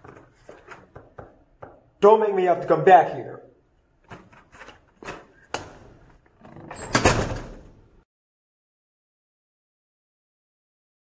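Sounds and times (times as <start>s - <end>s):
wooden door slamming shut: 6.6s - 7.8s.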